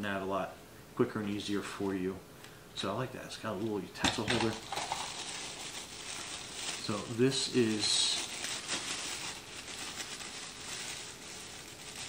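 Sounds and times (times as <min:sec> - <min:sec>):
plastic crinkling: 0:03.4 - 0:12.0.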